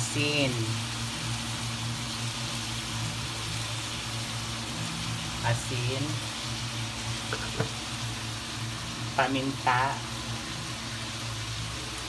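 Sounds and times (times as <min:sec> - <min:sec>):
meat sizzling in a wok: 0:00.0 - 0:12.0.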